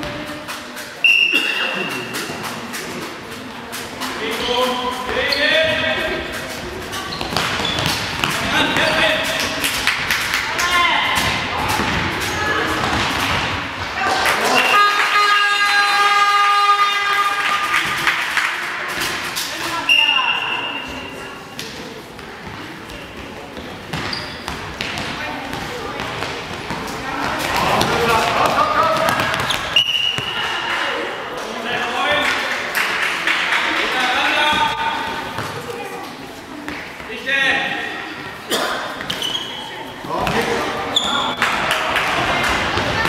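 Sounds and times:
short high whistle blasts: 0:01.0 - 0:01.6
ball bouncing on hall floor: 0:01.4 - 0:14.0, 0:21.6 - 0:30.7, 0:34.4 - 0:35.8, 0:39.0 - 0:43.0
players and spectators shouting: 0:14.0 - 0:17.8.

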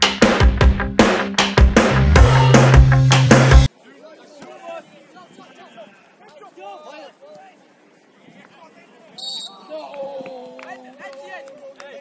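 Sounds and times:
music with heavy drum beat: 0:00.0 - 0:03.7.

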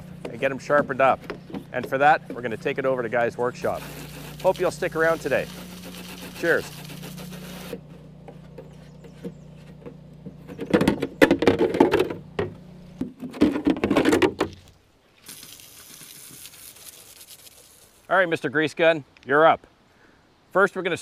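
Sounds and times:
steady low hum: 0:00.0 - 0:13.2
water spraying on steel deck: 0:02.6 - 0:07.8, 0:15.2 - 0:18.1
knocks and rattles: 0:08.3 - 0:14.6.

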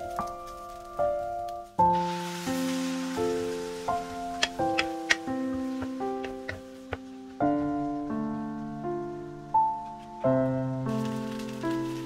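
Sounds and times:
soft piano music: 0:00.0 - 0:12.0
water hissing in hot pan: 0:00.2 - 0:08.3, 0:10.9 - 0:12.0
wooden spatula clicking on pan: 0:04.4 - 0:07.1.

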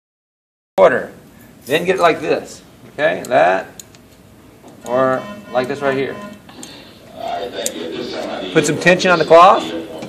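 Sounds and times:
man speaking: 0:00.8 - 0:03.8, 0:04.8 - 0:06.4, 0:07.1 - 0:10.0
faint murmured voices: 0:05.2 - 0:10.0.

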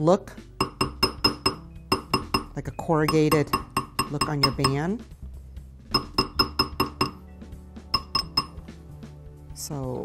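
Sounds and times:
hammer tapping metal ring: 0:00.6 - 0:04.9, 0:05.9 - 0:07.2, 0:08.0 - 0:08.6.

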